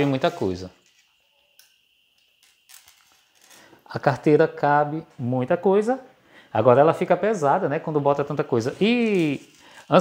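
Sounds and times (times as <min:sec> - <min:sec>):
man speaking: 0:00.0 - 0:00.8, 0:03.9 - 0:10.0.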